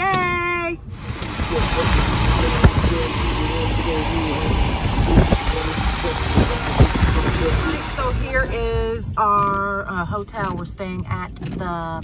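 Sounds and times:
road noise inside moving car: 0.0 - 11.5
tyres hissing on wet pavement: 1.0 - 8.4.

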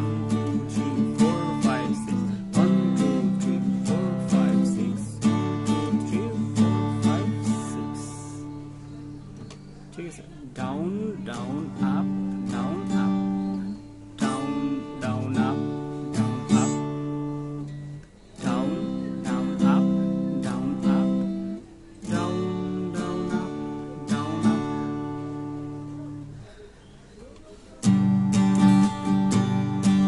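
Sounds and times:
acoustic guitar strumming: 0.0 - 26.8, 27.8 - 30.0.

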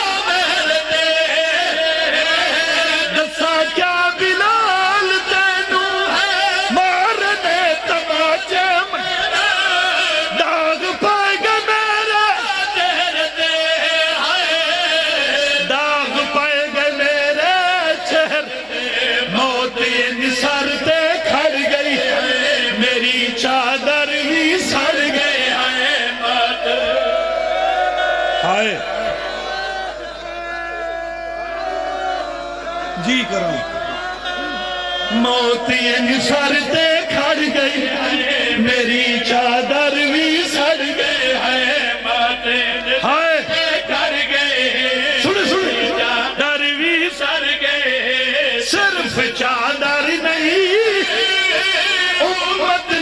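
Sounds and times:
man chanting melodic recitation: 0.0 - 26.6, 33.0 - 53.0.

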